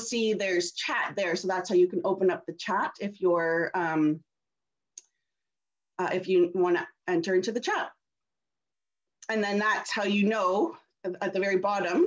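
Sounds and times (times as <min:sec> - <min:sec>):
woman's voice: 0:00.0 - 0:04.3, 0:06.0 - 0:08.0, 0:09.2 - 0:12.0.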